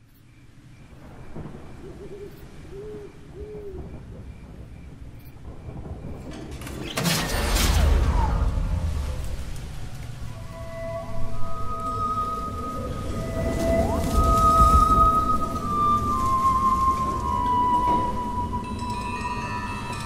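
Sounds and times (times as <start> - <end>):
low rumble of night wind: 0.0 - 20.0
loud thunder crack rolling: 1.0 - 18.6.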